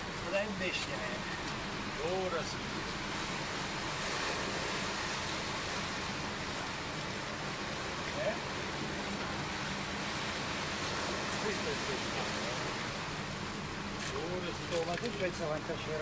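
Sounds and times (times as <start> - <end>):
rushing outdoor noise: 0.0 - 16.0.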